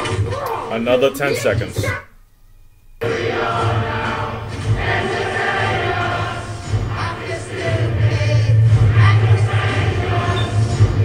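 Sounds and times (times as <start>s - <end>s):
crowd singing: 3.0s - 11.0s
film soundtrack music: 3.0s - 11.0s.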